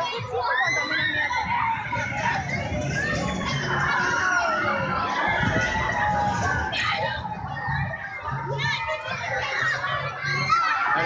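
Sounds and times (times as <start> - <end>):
crowd shrieking and shouting: 0.0 - 11.0.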